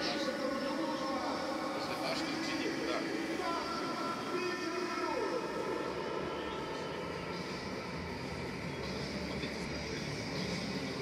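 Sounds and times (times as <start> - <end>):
faint indistinct voices: 0.0 - 11.0
stadium background noise: 0.0 - 11.0.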